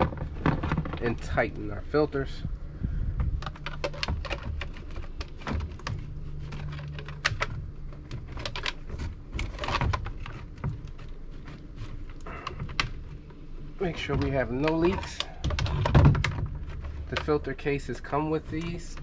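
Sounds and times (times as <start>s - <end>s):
low steady hum: 0.0s - 19.0s
plastic clicks and knocks: 3.2s - 13.4s, 14.0s - 17.4s.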